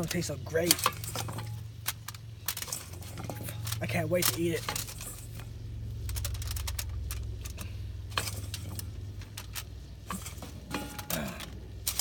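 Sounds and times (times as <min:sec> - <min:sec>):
aluminium foil crinkling: 0:00.0 - 0:12.0
steady low hum: 0:00.0 - 0:12.0.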